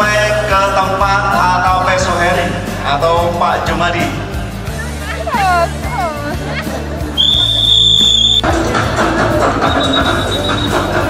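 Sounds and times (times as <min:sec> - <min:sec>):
background music with beat: 0:00.0 - 0:11.0
whistle blast: 0:07.2 - 0:08.5.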